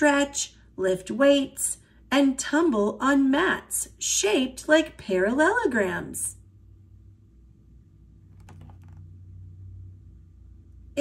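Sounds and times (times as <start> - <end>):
paper page turning: 8.4 - 9.0.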